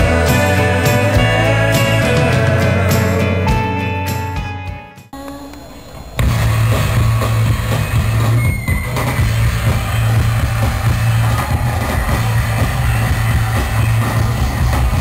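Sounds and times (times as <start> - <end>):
rock music with heavy bass: 0.0 - 5.1, 6.2 - 15.0.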